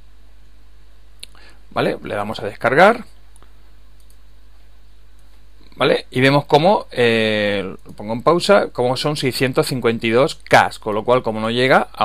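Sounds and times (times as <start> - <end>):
low electrical hum: 0.0 - 12.0
computer mouse click: 4.0 - 4.2.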